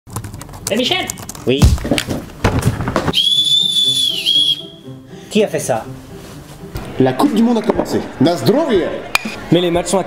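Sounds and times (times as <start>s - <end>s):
knocks and rustles: 1.5s - 3.1s
plastic whistle blast: 3.1s - 4.8s.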